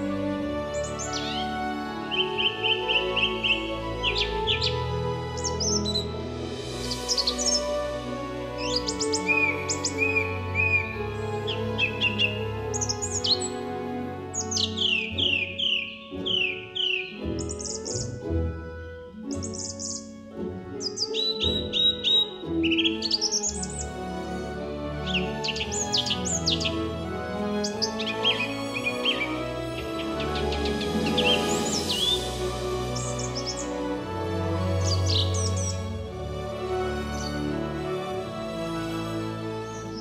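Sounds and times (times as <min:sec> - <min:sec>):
birds chirping and whistling: 0:00.0 - 0:40.0
soft background music: 0:00.0 - 0:40.0.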